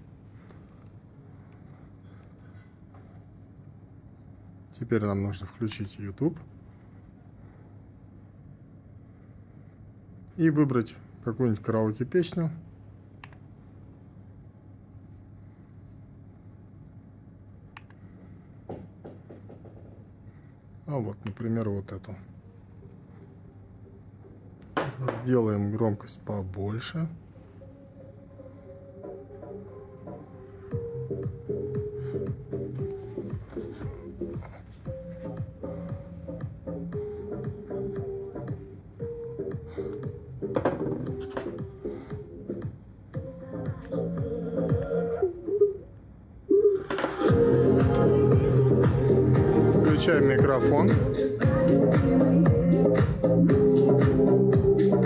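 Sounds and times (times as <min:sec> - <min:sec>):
low electrical hum: 0:00.0 - 0:55.0
pop karaoke backing track: 0:29.0 - 0:45.6, 0:46.8 - 0:55.0.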